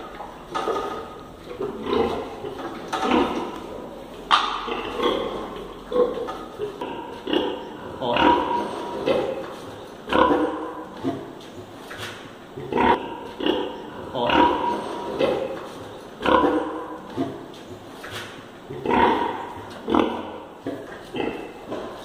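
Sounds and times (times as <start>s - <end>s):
pigs grunting: 0.0s - 11.8s, 12.5s - 17.6s, 18.6s - 22.0s.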